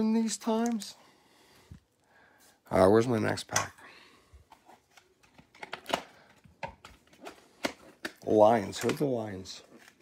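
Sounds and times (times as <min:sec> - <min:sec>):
plastic wrapper crinkling and tearing: 0:04.7 - 0:10.0.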